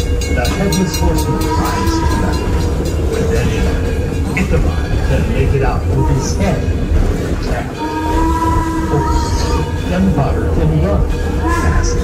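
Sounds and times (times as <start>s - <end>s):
moving train rumble: 0.0s - 12.0s.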